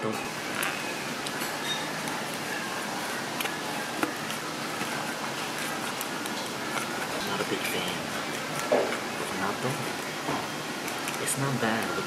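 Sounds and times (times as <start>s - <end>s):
restaurant background noise: 0.0s - 12.0s.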